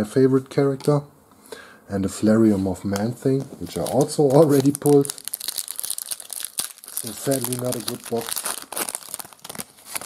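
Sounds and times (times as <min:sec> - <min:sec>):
foil wrapper crinkling torn open: 0:03.7 - 0:10.0.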